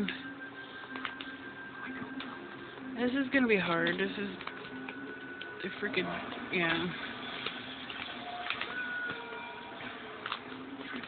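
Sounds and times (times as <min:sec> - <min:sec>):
small clicks and crackles: 0:00.9 - 0:02.4, 0:03.4 - 0:11.0.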